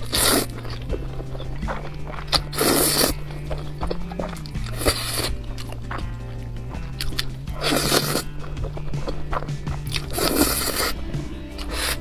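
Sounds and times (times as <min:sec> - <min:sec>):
background music: 0:00.0 - 0:12.0
person slurping noodles: 0:00.0 - 0:12.0.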